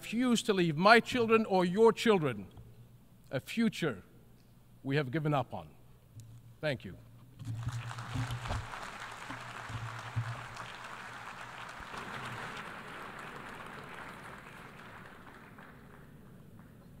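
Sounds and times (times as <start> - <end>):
audience applauding: 7.4 - 17.0.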